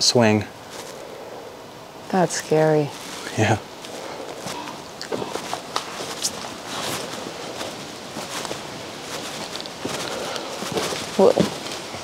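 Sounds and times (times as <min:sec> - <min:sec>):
footsteps on sticks and rubble: 0:00.6 - 0:01.1, 0:02.7 - 0:12.0
sticks snapping underfoot: 0:03.9 - 0:11.9.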